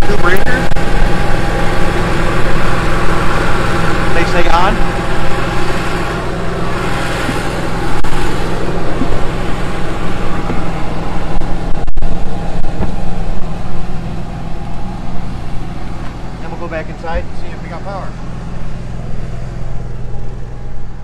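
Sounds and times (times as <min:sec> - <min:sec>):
generator engine hum: 0:00.0 - 0:21.0.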